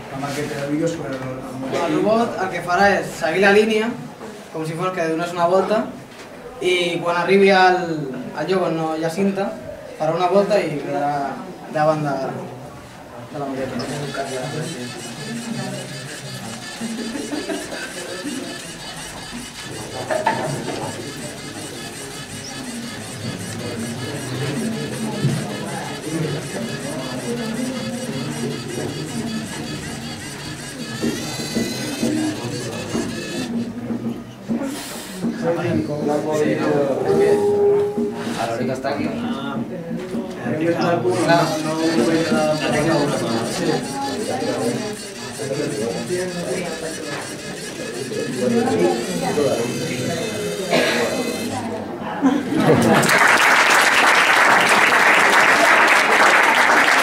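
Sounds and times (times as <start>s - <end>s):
murmur of voices: 0.0s - 57.0s
people talking low: 10.8s - 53.1s.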